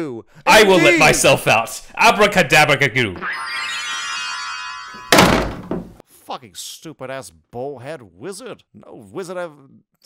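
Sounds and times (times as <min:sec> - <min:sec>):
shimmering ringing tone: 0:03.2 - 0:05.2
door shutting heavily: 0:05.1 - 0:06.0.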